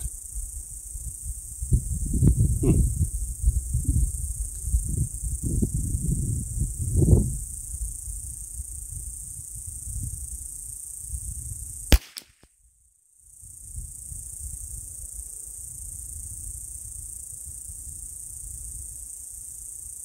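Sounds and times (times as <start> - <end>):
wind rumbling on microphone: 0.0 - 11.9, 13.5 - 19.1
rifle shot: 11.9 - 12.4.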